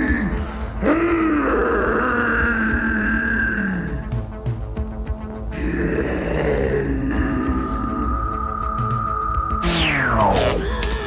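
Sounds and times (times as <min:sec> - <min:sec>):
music: 0:00.0 - 0:11.0
monster groaning: 0:05.5 - 0:08.2.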